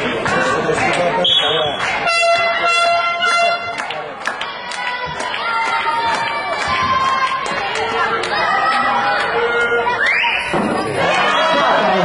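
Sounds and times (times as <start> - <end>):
crowd chatter: 0.0 - 12.0
long horn blast: 2.1 - 3.7.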